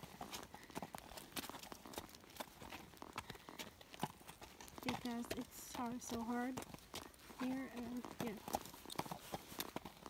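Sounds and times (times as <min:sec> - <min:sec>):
hooves clopping on hard ground: 0:00.0 - 0:10.0.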